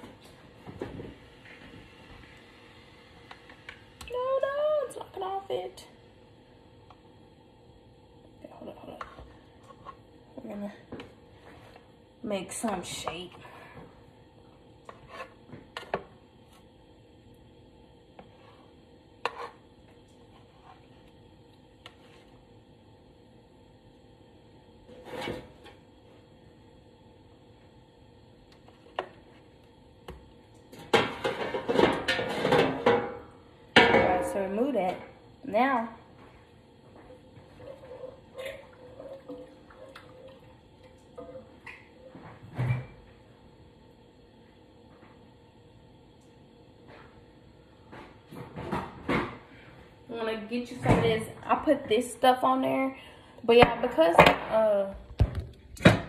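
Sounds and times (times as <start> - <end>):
spatula scraping metal pan: 14.9 - 15.9, 19.2 - 19.6.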